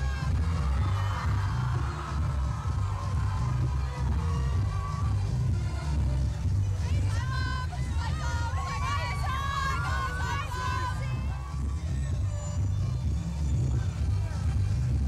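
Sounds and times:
crowd voices: 0:00.0 - 0:15.0
dance music with heavy bass: 0:00.0 - 0:15.0.

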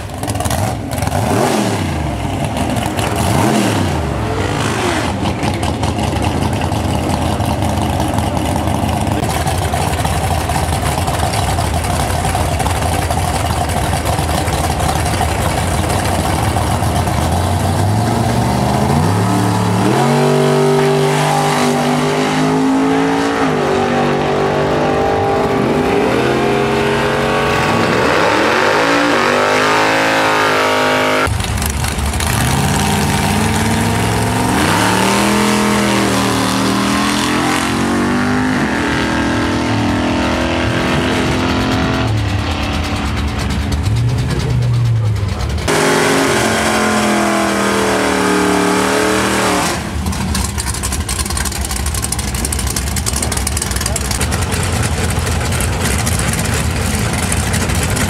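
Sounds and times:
drag car engines: 0:00.0 - 0:58.0
car accelerating through gears: 0:32.3 - 0:43.1, 0:45.6 - 0:50.2.

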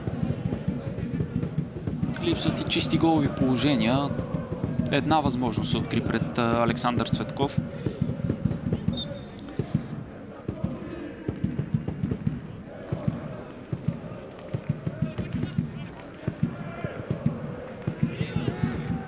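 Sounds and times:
faint voices shouting: 0:00.0 - 0:19.0.

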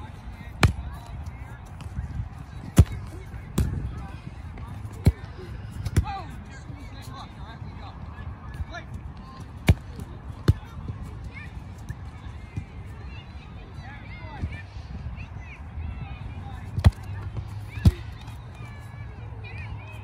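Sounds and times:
soccer ball kicked on turf: 0:00.5 - 0:06.3, 0:08.5 - 0:12.8, 0:16.5 - 0:18.8.

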